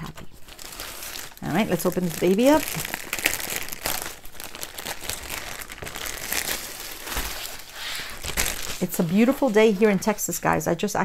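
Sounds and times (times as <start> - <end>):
plastic bag crinkling: 0.0 - 10.5.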